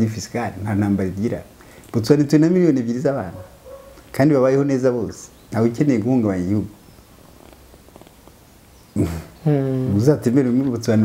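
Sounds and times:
faint irregular clicks: 1.6 - 2.0, 7.4 - 8.8.

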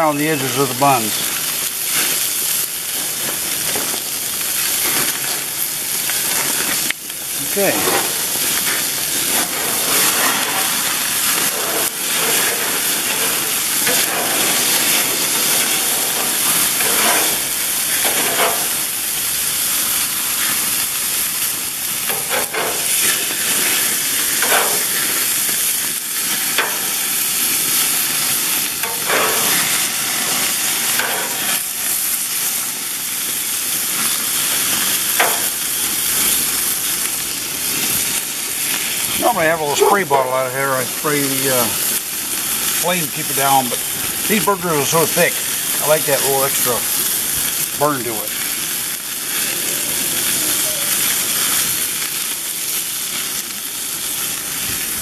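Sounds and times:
burger patties sizzling on grill: 0.0 - 55.0
fat flaring in fire: 0.1 - 55.0.

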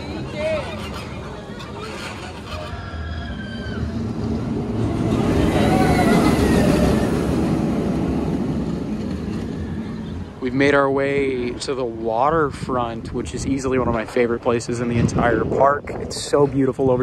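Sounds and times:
roller coaster train rumbling: 0.0 - 17.0.

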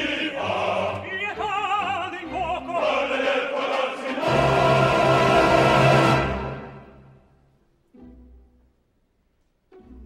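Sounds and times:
opera chorus singing: 0.0 - 7.2.

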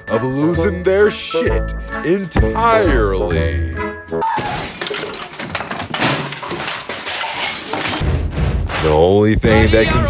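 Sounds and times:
glass shattering: 4.4 - 8.0
objects crashing: 4.4 - 8.1.

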